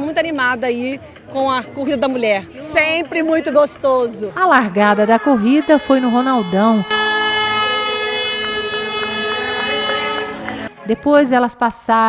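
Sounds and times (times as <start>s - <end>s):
horn blast: 4.9s - 11.0s.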